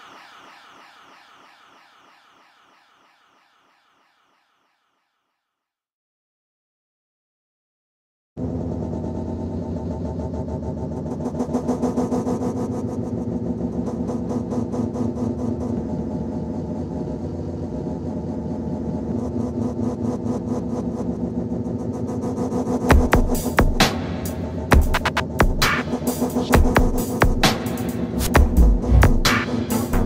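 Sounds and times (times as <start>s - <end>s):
distorted synth bass drone: 20.9s - 30.0s.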